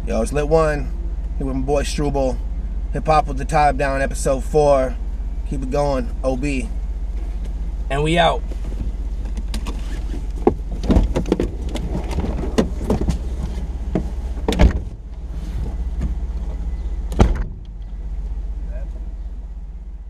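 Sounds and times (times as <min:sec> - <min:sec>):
car engine idling: 0:00.0 - 0:20.0.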